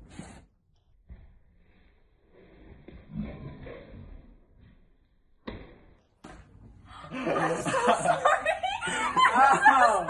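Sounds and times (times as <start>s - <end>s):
man laughing: 7.2s - 10.0s
woman laughing: 7.2s - 10.0s.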